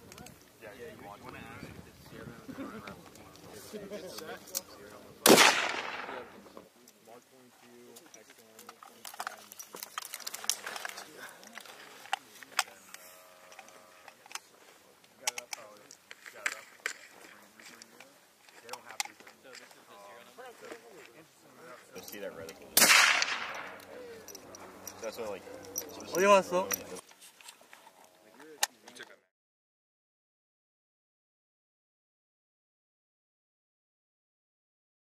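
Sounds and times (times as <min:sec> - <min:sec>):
faint voices: 0:00.0 - 0:27.1
rifle shot with echo: 0:05.2 - 0:06.4, 0:22.8 - 0:23.8
faint sharp cracks and clicks: 0:22.8 - 0:24.6.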